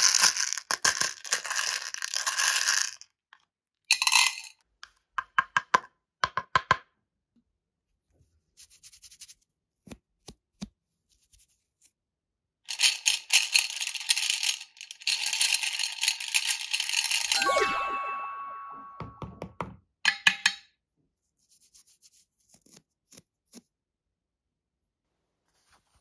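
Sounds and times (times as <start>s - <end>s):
plastic beads clicking and rattling: 0.0s - 3.1s, 12.7s - 17.4s.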